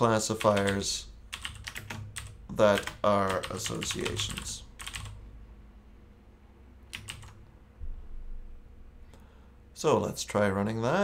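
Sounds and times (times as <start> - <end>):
computer keyboard keystrokes: 0.4 - 5.2, 6.9 - 7.4
soft low thump: 7.8 - 8.5.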